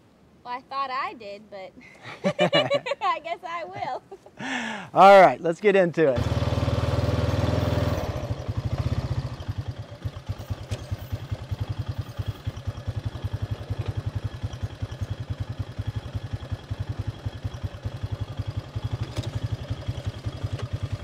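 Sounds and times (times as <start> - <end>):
four-wheeler engine idling: 6.2 - 21.0.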